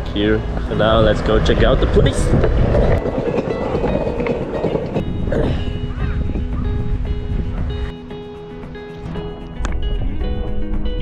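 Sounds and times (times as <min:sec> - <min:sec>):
skateboard wheels rolling on stone: 0:00.6 - 0:05.1
background music with held notes: 0:03.1 - 0:11.0.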